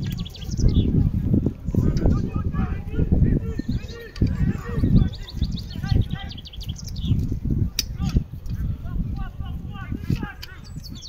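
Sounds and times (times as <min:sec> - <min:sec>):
voices calling out: 0:00.0 - 0:11.0.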